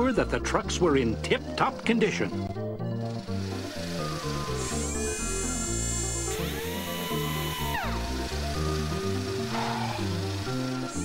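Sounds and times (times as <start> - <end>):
cartoon background music: 0.0 - 11.0
power tool whine: 1.3 - 11.0.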